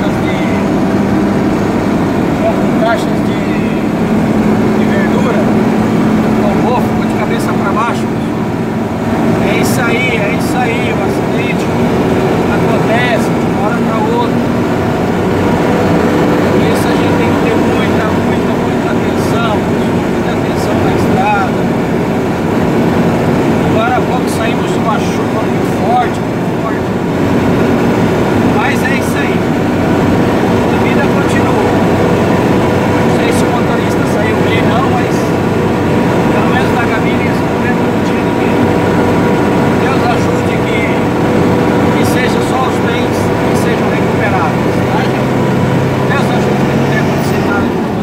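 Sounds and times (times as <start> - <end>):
vehicle engine and road noise: 0.0 - 48.0
faint voices chattering: 23.1 - 48.0.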